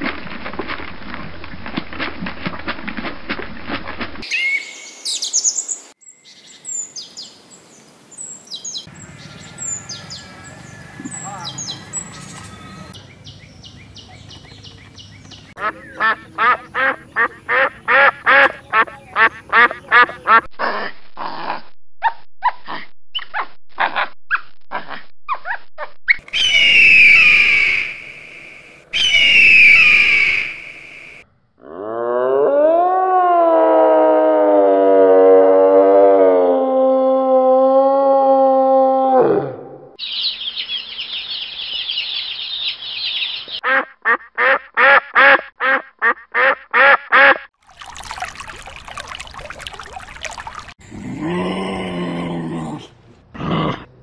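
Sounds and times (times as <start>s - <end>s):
ducks quacking: 15.6s - 21.5s, 43.6s - 47.5s
long rising call: 26.2s - 31.2s
high rasping call: 26.3s - 31.2s.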